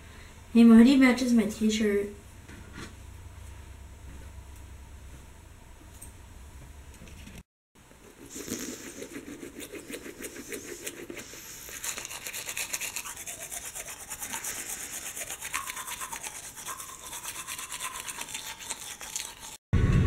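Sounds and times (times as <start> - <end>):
toothbrush scrubbing teeth: 8.0 - 19.6.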